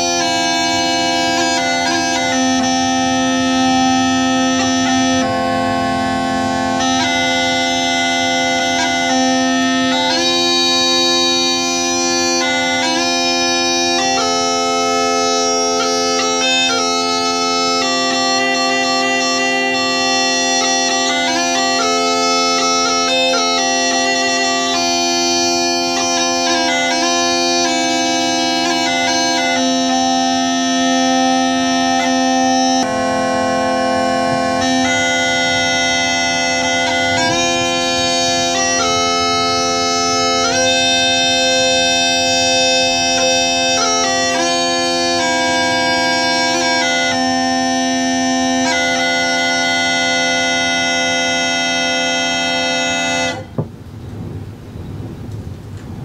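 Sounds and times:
bagpipe melody over drones: 0:00.0 - 0:53.7
low rushing noise: 0:53.6 - 0:56.0.

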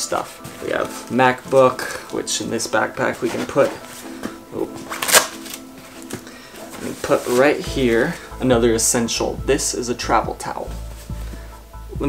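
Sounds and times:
soft background music: 0:00.0 - 0:12.0
laptop scraping into padded sleeve: 0:03.2 - 0:08.3.

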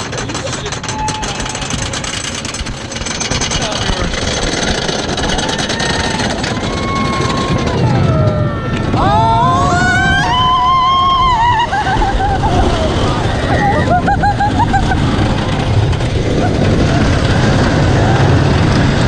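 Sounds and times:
roller coaster rattling on track: 0:00.0 - 0:19.0
riders screaming: 0:00.4 - 0:02.3, 0:04.6 - 0:19.0
wind noise on microphone: 0:01.0 - 0:19.0.

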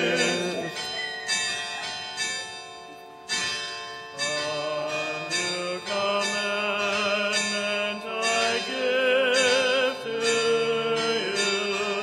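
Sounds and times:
church bell ringing: 0:00.0 - 0:12.0.

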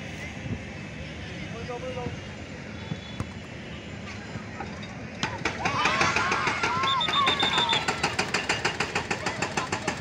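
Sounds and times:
children calling: 0:05.2 - 0:10.0
machine knocking rapidly: 0:05.3 - 0:10.0.

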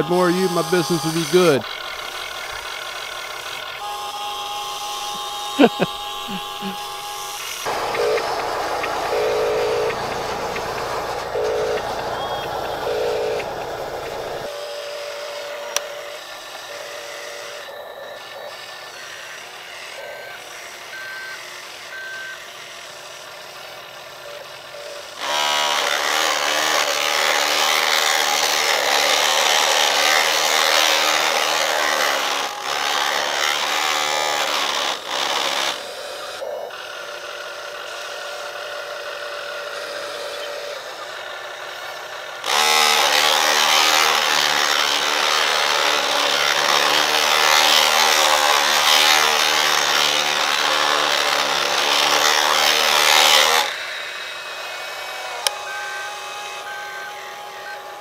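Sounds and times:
toy electric motor whirring: 0:00.0 - 0:58.0
low steady hum: 0:03.8 - 0:14.5
electronic reversing beeps: 0:03.9 - 0:14.5.

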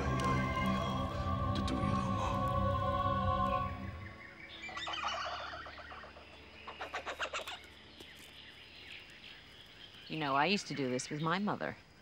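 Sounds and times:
brooding music with held tones: 0:00.0 - 0:10.2
birds chirping: 0:00.0 - 0:12.0.

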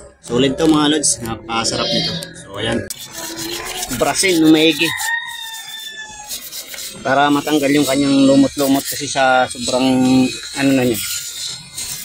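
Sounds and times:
snail shells rubbing together: 0:02.9 - 0:12.0.

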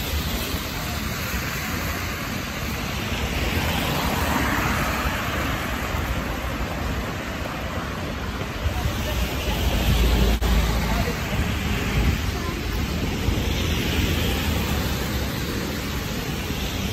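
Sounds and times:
car tyres hissing on wet street: 0:00.0 - 0:16.9
city traffic rumble: 0:00.0 - 0:16.9.

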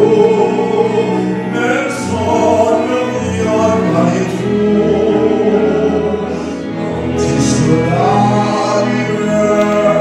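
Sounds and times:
piano accompaniment: 0:00.0 - 0:10.0
string quartet bowing melody: 0:00.0 - 0:10.0.

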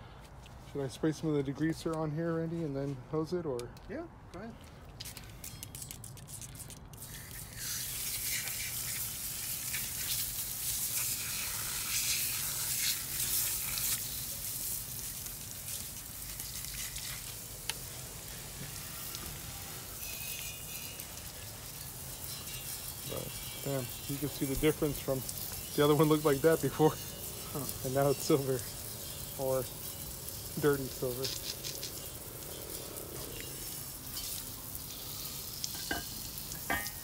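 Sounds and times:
hissing liquid spray: 0:06.1 - 0:37.0.

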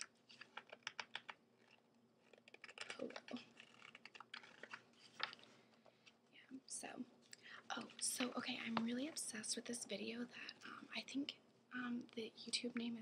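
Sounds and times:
magazine pages turning: 0:00.0 - 0:06.2
person whispering: 0:06.4 - 0:13.0.

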